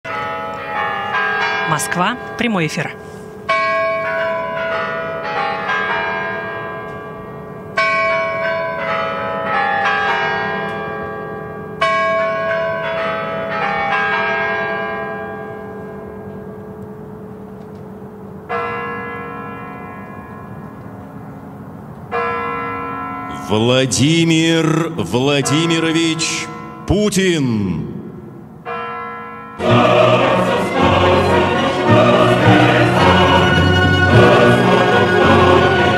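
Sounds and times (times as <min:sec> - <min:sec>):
clock tower chime melody: 0:00.1 - 0:35.9.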